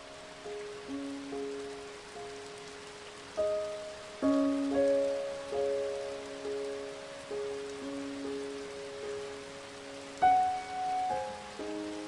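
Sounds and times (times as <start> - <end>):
rain hissing: 0.0 - 12.0
soft background music: 0.0 - 12.0.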